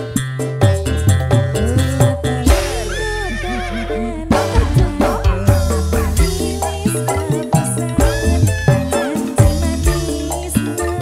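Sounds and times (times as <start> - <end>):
hand drum playing: 0.0 - 11.0.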